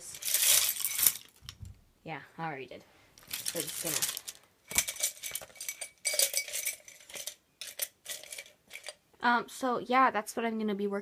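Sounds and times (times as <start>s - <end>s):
wooden brushes rattling: 0.0s - 1.7s, 3.2s - 9.0s
brushes dropped into ceramic jar: 3.3s - 9.0s.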